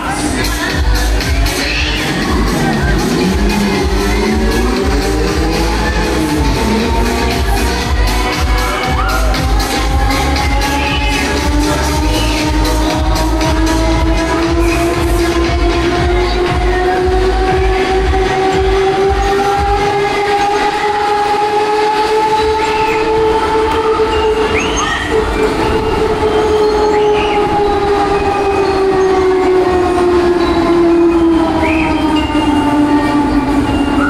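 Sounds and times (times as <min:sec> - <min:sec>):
fairground ride horn-like whine: 0:00.0 - 0:34.0.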